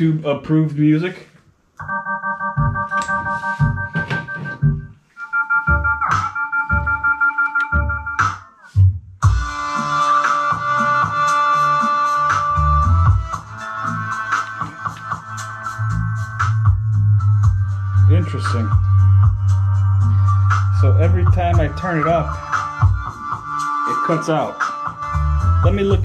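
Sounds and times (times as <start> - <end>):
electronic keyboard music with bass: 1.8 - 26.0.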